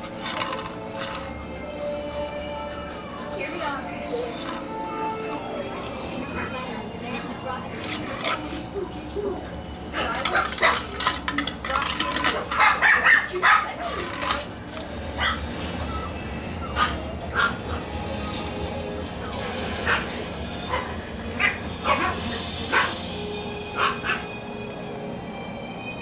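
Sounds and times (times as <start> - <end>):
puppies yipping and barking: 0.0 - 24.4.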